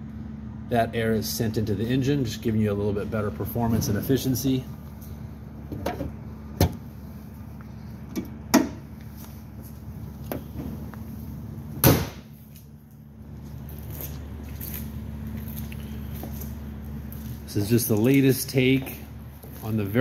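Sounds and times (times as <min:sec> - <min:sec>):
steady low hum: 0:00.0 - 0:20.0
car hood slamming shut: 0:11.8 - 0:12.3
sharp knocks on car hood: 0:11.8 - 0:12.3.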